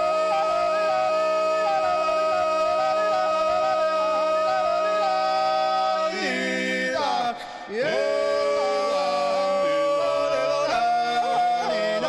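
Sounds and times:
men singing a cappella: 0.0 - 12.0.

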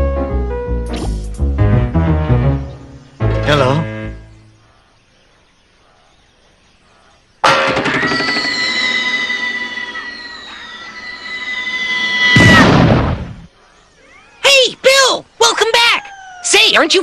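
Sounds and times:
long falling whistle: 7.9 - 12.6
loud crash: 12.2 - 13.5.

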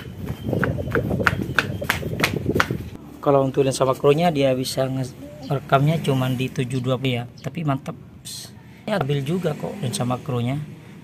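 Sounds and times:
running footsteps: 0.0 - 3.0.

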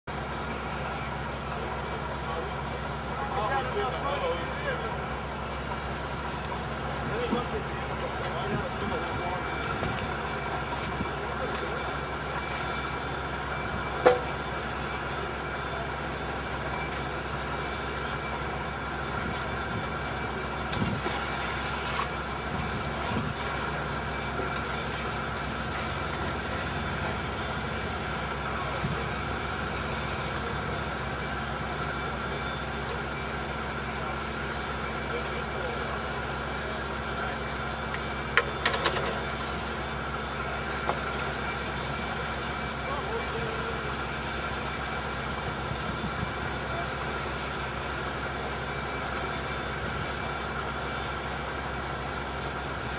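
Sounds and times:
construction machinery engines running: 0.1 - 52.9.

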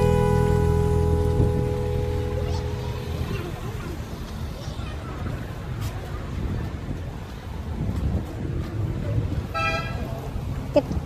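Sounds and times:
street noise rumble: 0.0 - 11.0.

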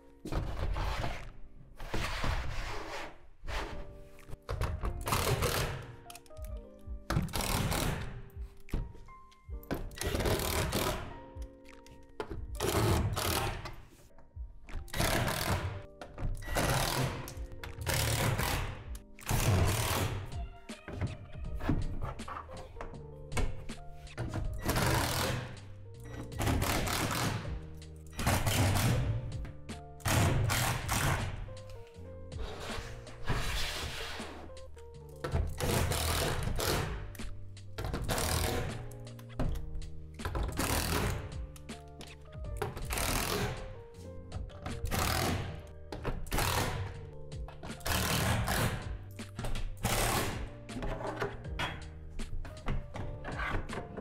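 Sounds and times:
background music: 0.0 - 54.0.

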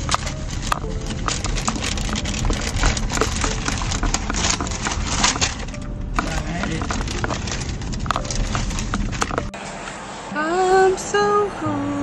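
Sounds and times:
paper bag rustling and crinkling: 0.0 - 9.6
low rumble of moving car: 0.0 - 12.0.

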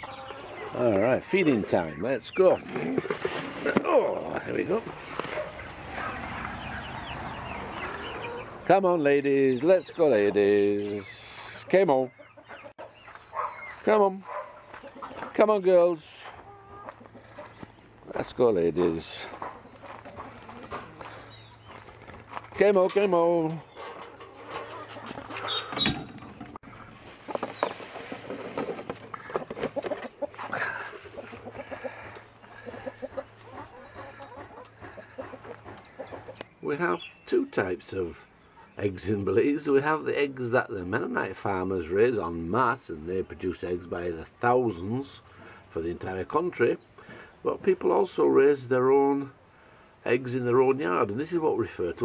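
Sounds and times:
hens scratching: 0.0 - 38.2
hens clucking: 0.0 - 49.5.

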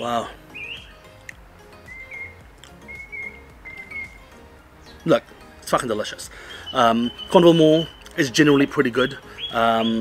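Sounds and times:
faint background music: 0.0 - 10.0
bird whistling: 0.5 - 1.0, 1.8 - 5.1, 6.3 - 10.0.

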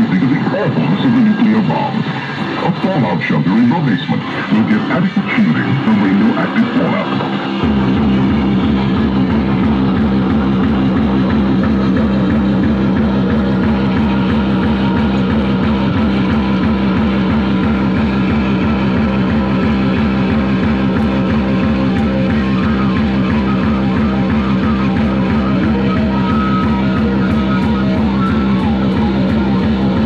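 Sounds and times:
pulsing electronic drone: 0.0 - 30.0.

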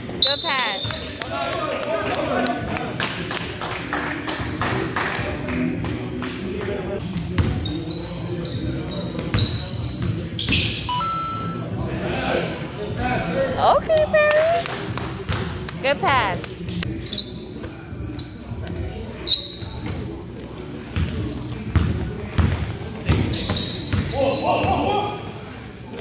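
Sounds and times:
sneakers squeaking on floor: 0.0 - 1.2, 7.0 - 13.6, 16.6 - 26.0
basketball bouncing on gym floor: 20.9 - 24.8.

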